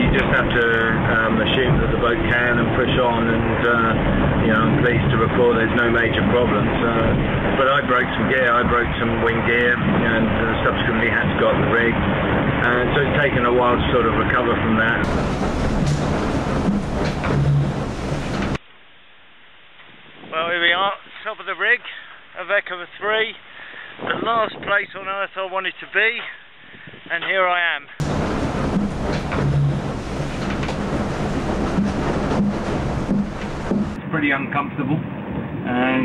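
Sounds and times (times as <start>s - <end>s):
rushing wind and sea: 0.0s - 18.6s, 19.9s - 21.2s, 23.2s - 36.0s
wind buffeting microphone: 0.0s - 18.6s, 19.8s - 21.2s, 23.7s - 25.3s, 26.6s - 27.2s, 28.0s - 36.0s.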